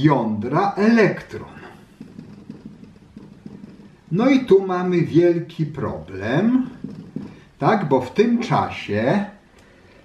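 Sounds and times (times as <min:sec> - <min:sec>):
marker pen on whiteboard: 0:00.0 - 0:10.0.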